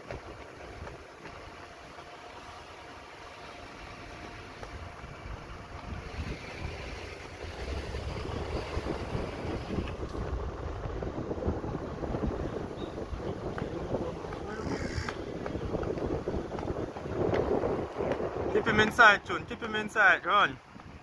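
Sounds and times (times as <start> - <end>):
low rumble: 0.0 - 19.3
wind buffeting microphone: 0.0 - 21.0.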